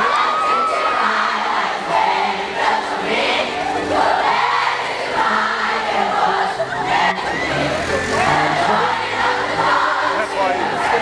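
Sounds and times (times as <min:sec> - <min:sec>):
amplified singer: 0:00.0 - 0:11.0
backing track: 0:00.0 - 0:11.0
crowd singing pop ballad: 0:00.0 - 0:11.0.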